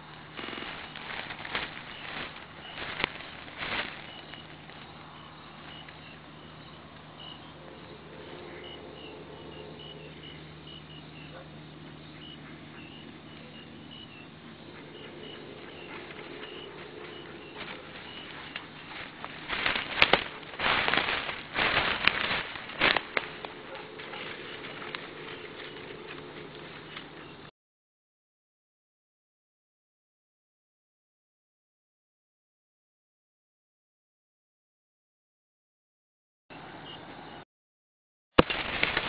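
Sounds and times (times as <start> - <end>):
low hum: 0.0 - 27.5
rough rustling bursts: 0.1 - 5.0, 16.0 - 27.1, 38.4 - 39.0
insects chirping: 0.3 - 27.5.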